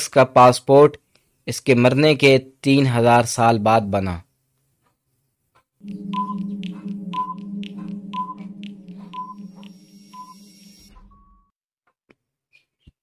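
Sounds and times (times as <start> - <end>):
clock ticking: 5.8 - 10.4
steady low hum: 5.8 - 10.9
short high beeps: 5.8 - 11.4.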